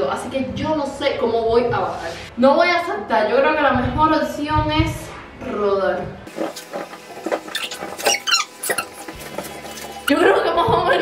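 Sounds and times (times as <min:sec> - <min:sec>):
exercise ball squeaking: 0:06.6 - 0:09.6.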